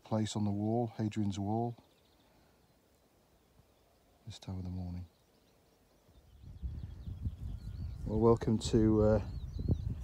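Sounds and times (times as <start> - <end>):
small birds twittering: 0.0 - 10.0
wind buffeting microphone: 6.1 - 10.0.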